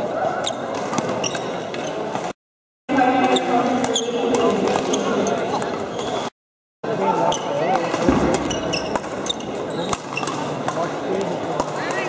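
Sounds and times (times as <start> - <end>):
shoes squeaking on floor: 0.3 - 2.4, 3.1 - 6.3, 7.2 - 10.6.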